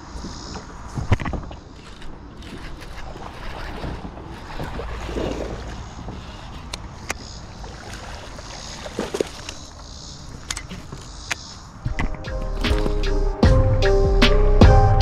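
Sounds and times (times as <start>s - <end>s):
water sloshing and splashing: 0.9s - 11.2s
knocks and clicks of fishing gear: 10.3s - 13.2s.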